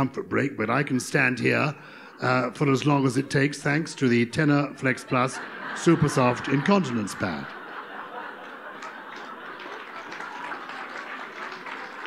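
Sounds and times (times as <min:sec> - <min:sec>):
audience laughing: 0:00.6 - 0:12.0.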